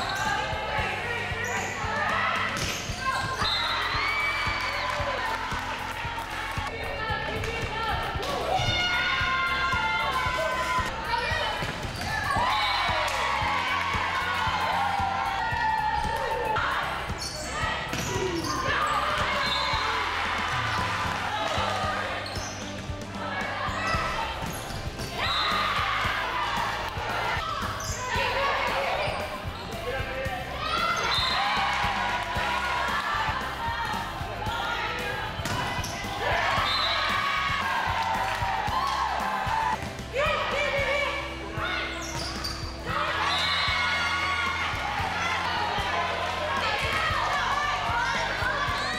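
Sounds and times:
people shouting and cheering: 0.0s - 48.9s.

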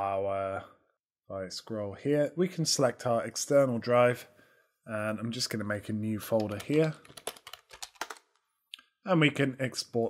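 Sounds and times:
typing on keyboard: 6.3s - 8.4s.

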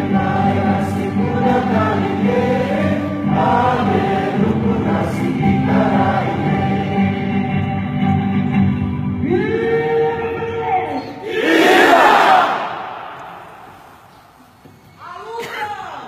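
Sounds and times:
crowd singing together: 0.0s - 8.0s, 11.2s - 14.1s
music: 0.0s - 11.2s.

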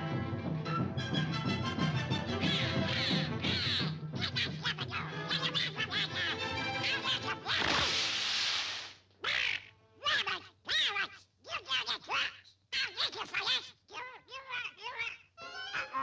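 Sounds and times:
orchestral cartoon music: 0.0s - 7.6s
cartoon duck quacking voice: 2.4s - 7.8s, 9.2s - 16.0s
falling glide into crash-splash: 7.5s - 9.0s.

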